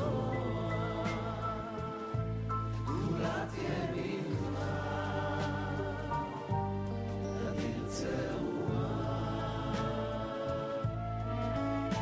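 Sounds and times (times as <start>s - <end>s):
choir singing held notes: 0.0s - 2.2s, 2.8s - 6.6s, 7.3s - 12.0s
musical accompaniment: 0.0s - 12.0s.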